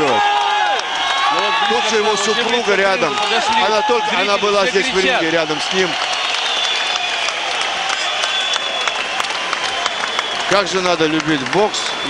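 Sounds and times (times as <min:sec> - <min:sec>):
crowd applauding: 0:00.0 - 0:12.0.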